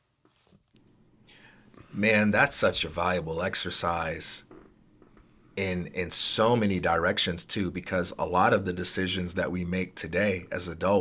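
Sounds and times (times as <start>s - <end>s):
man breathing in: 1.3s - 1.9s
man speaking: 1.8s - 4.6s, 5.6s - 11.0s.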